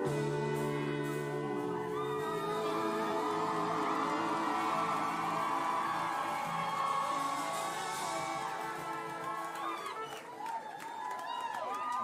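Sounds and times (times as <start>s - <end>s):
crowd whooping: 1.3s - 12.0s.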